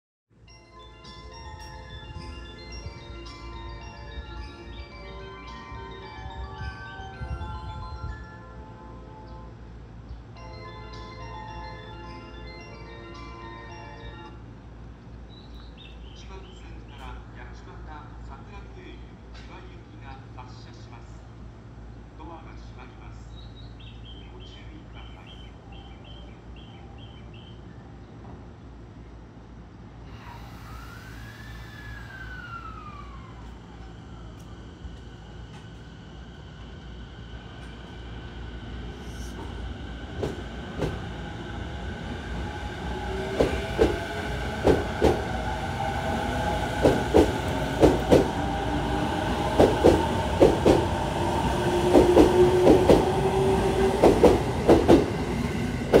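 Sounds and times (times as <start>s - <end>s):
low train rumble: 0.4s - 56.0s
electric train motor whine: 30.1s - 39.1s
train wheels clicking over rail joints: 46.8s - 48.6s, 49.5s - 51.0s, 53.8s - 56.0s.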